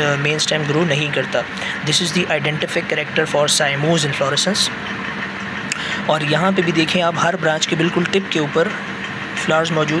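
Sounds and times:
person speaking: 0.0 - 4.8, 5.7 - 10.0
mechanical hum: 0.0 - 10.0.

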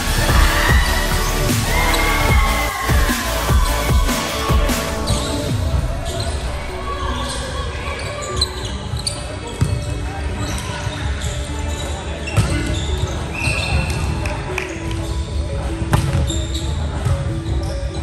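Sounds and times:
players' voices echoing: 0.0 - 12.3.

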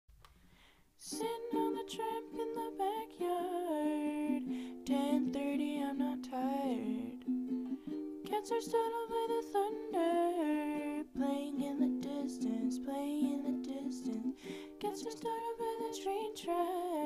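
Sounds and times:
ukulele strumming chords: 1.0 - 17.0.

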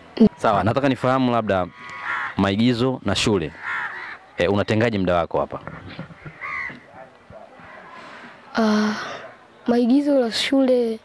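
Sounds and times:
crow cawing: 1.5 - 4.5, 6.1 - 9.4.

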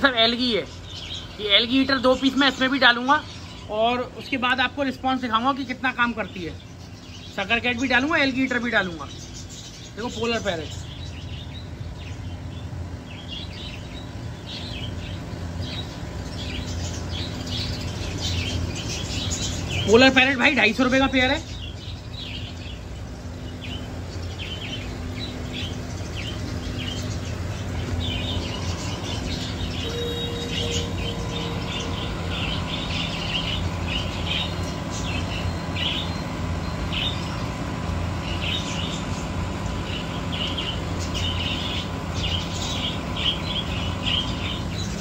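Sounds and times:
small birds chirping: 0.0 - 45.0
steady low hum: 0.0 - 45.0.

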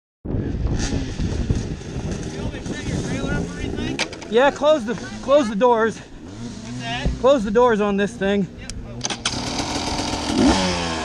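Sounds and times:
wind rumble on microphone: 0.2 - 4.0.

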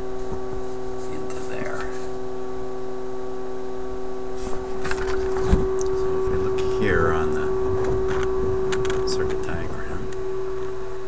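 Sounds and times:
tube radio hum: 0.0 - 11.0.

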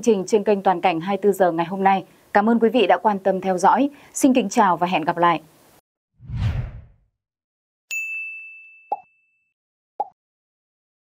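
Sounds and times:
bell-like notification ding: 7.9 - 9.5.

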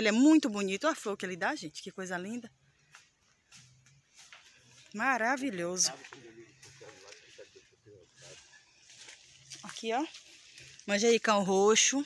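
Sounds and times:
woman's voice: 0.0 - 2.5, 4.9 - 6.0, 9.6 - 10.2, 10.9 - 12.0.

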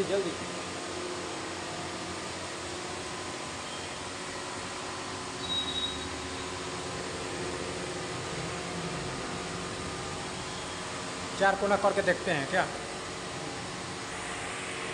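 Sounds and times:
electric motors humming: 0.0 - 14.9.

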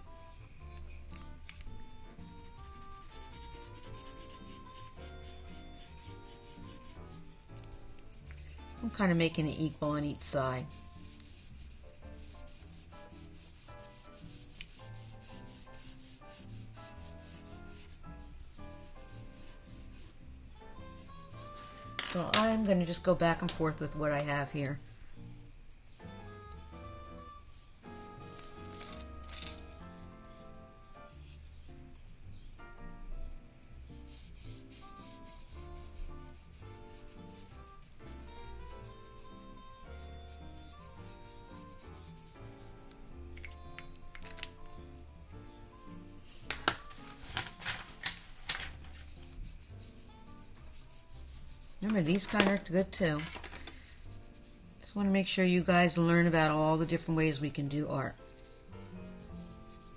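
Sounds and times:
faint background music: 0.0 - 59.9
pencil scratching on paper: 0.3 - 1.2, 2.3 - 20.2, 20.8 - 24.0, 25.3 - 31.7, 34.0 - 43.0, 48.9 - 59.9.

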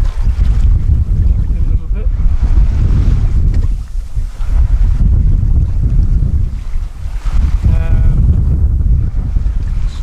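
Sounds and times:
choppy sea washing: 0.0 - 10.0
wind buffeting microphone: 0.0 - 10.0.

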